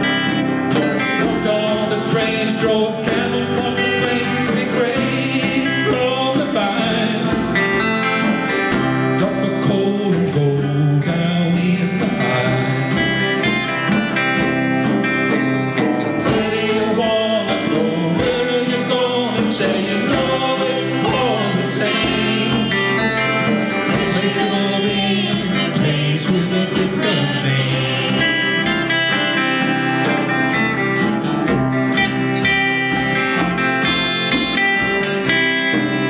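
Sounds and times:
country-folk trio playing: 0.0 - 36.0.

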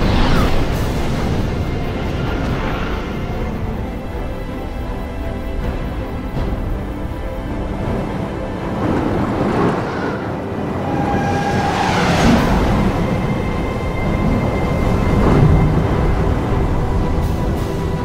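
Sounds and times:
tense dramatic film score: 0.0 - 18.0.

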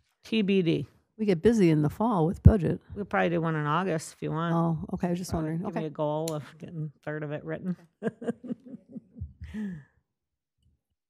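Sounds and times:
person laughing: 8.0 - 9.8
person sighing: 9.4 - 10.0.

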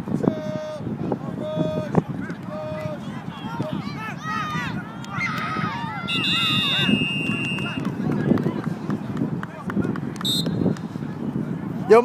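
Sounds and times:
chatter of people outdoors: 0.0 - 12.0.

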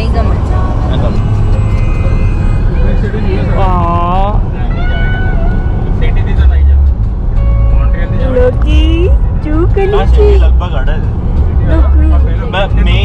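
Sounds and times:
car interior rumble: 0.0 - 13.0
music: 0.0 - 13.0.

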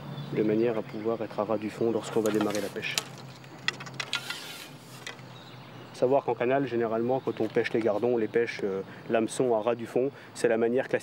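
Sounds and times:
fishing line rustle: 2.0 - 5.3
fishing pole handling clicks: 2.2 - 5.2.

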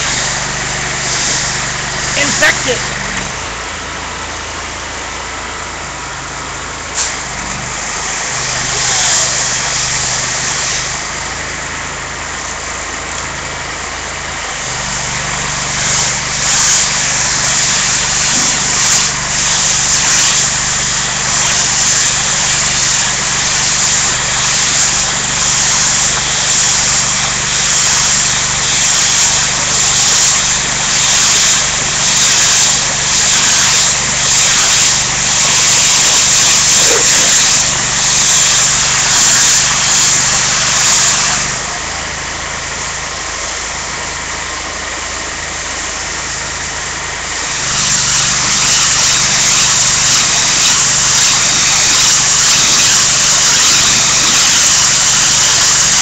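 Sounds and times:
broad hiss: 0.0 - 2.9, 8.0 - 11.2, 15.7 - 42.0, 47.4 - 56.0
vehicle engine idling: 0.0 - 16.0, 41.4 - 47.5.

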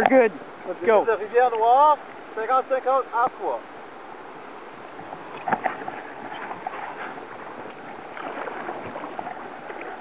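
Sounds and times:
rushing whitewater: 0.0 - 10.0
paddle splashes and knocks: 4.8 - 10.0.

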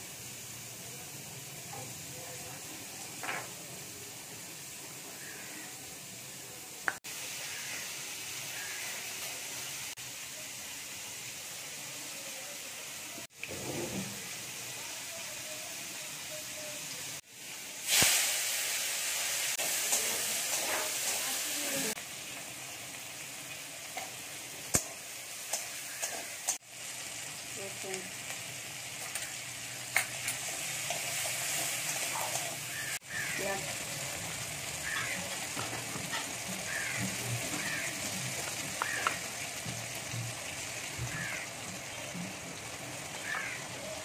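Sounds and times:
oil sizzling in a wok: 0.0 - 44.0.

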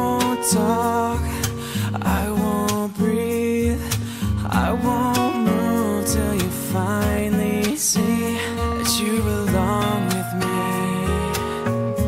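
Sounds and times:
bass: 0.0 - 12.0
man singing: 0.0 - 12.0
strummed acoustic guitar: 0.0 - 12.0.

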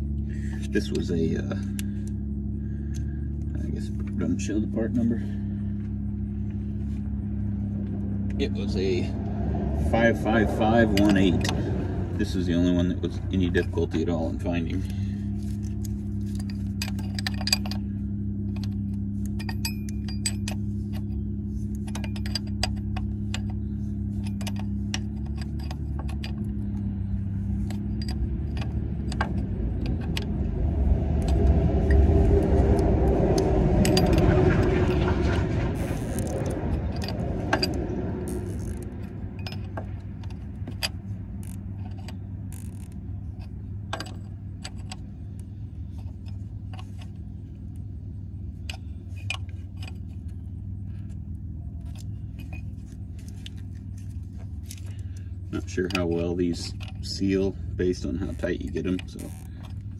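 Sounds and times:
passing vehicle rumble: 0.0 - 59.9
steady low hum: 0.0 - 59.9
wrench clinking on metal fittings: 15.6 - 30.3, 35.8 - 45.1.

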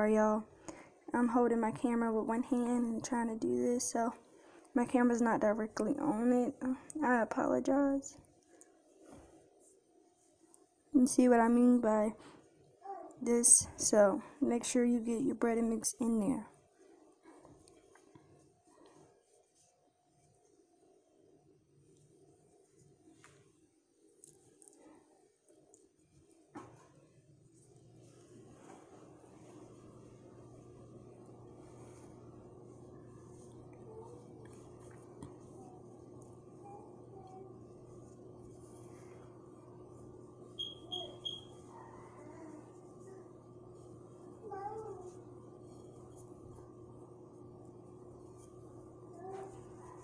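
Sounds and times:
low steady hum: 0.0 - 50.0.

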